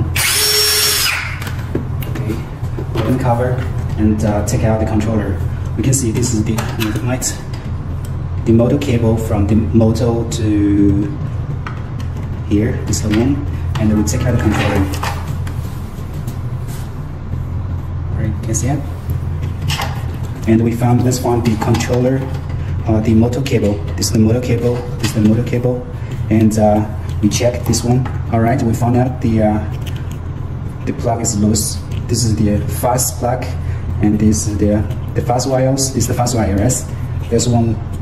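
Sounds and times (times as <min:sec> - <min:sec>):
cordless drill whining: 0:00.1 - 0:01.5.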